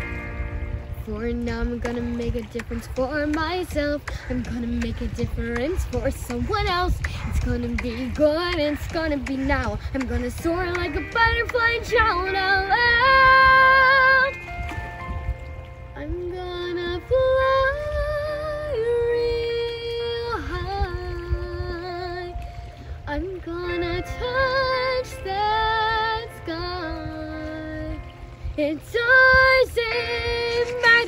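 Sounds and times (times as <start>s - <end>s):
girl singing: 0.8s - 14.4s, 15.9s - 31.0s.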